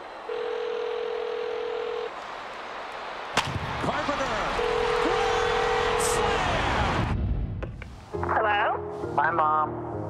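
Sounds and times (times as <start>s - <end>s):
ballpark crowd noise: 0.0s - 7.2s
telephone ringback tone: 0.3s - 2.1s.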